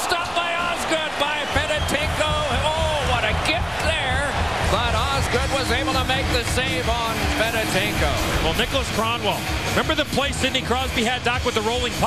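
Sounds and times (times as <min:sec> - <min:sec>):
background music: 0:00.0 - 0:12.0
commentator talking: 0:00.0 - 0:12.0.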